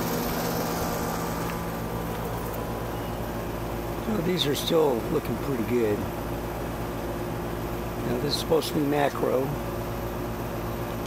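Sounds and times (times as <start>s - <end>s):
steady mechanical hum: 0.0s - 11.0s.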